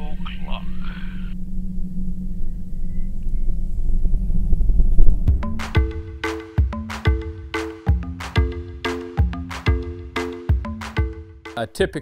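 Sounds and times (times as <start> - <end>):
music with mallet percussion: 5.4 - 11.6.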